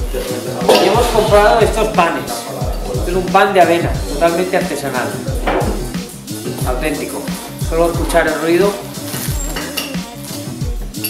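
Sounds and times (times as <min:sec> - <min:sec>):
music with thumping beat: 0:00.0 - 0:11.0.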